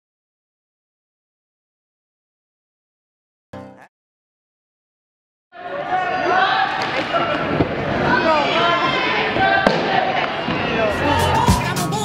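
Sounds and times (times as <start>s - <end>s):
crowd talking and calling out: 5.6s - 12.0s.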